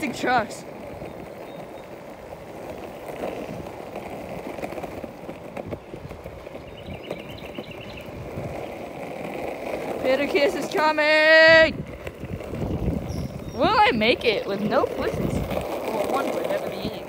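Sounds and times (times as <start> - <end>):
skateboard wheels rolling on asphalt: 0.0 - 17.0
wheels clicking over cracks: 0.0 - 17.0.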